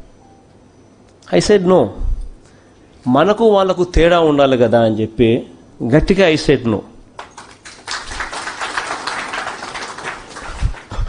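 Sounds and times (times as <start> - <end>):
crowd applauding: 7.2 - 11.0.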